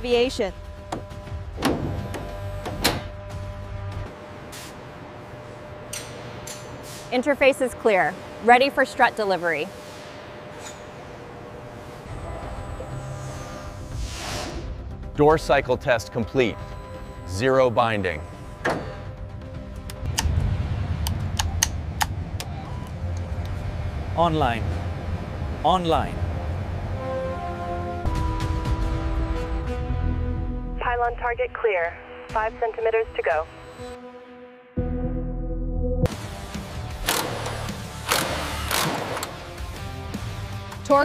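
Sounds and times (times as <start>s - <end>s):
background music: 0.0s - 4.2s, 12.1s - 41.0s
steady low hum: 0.0s - 34.0s
steady low drone: 7.2s - 31.4s
impact wrench bursts: 37.0s - 39.4s.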